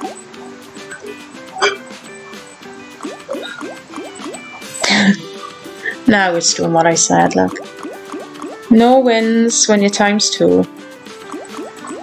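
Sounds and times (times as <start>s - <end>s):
bubbly dripping water effects: 0.0s - 6.0s, 6.9s - 8.9s, 11.1s - 12.0s
slot game background music: 0.0s - 12.0s.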